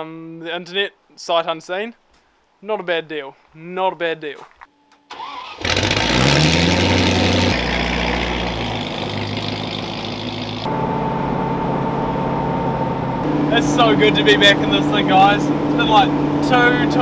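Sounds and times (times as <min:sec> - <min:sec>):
car engine starting and revving: 0:05.1 - 0:17.0
engine running while driving: 0:05.6 - 0:17.0.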